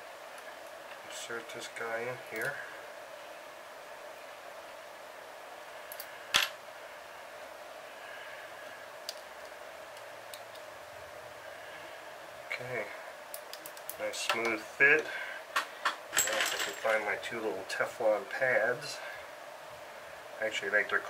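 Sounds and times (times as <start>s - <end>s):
low room hiss: 0.0s - 21.0s.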